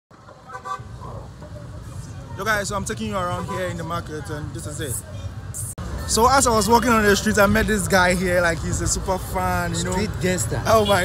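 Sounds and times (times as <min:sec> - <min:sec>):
street traffic rumble: 0:00.1 - 0:11.0.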